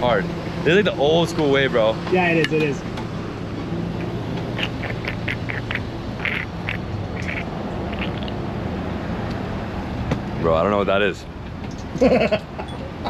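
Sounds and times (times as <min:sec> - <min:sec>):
street traffic hum: 0:00.0 - 0:13.0.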